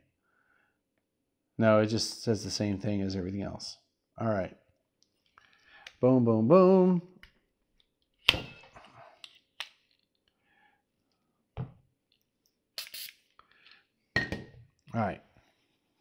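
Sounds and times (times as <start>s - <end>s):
glass bottle set down on table: 14.2s - 14.6s.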